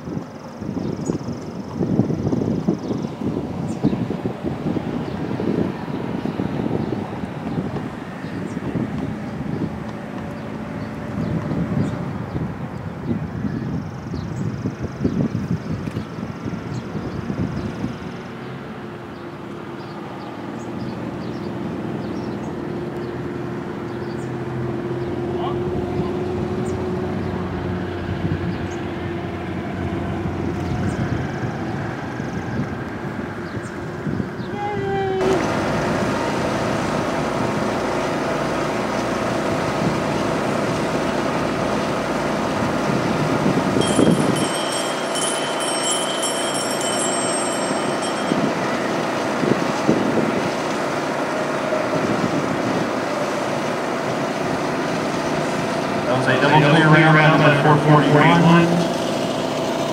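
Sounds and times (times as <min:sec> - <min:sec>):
wind buffeting microphone: 0:00.0 - 0:58.0
faint voices: 0:56.0 - 0:59.0.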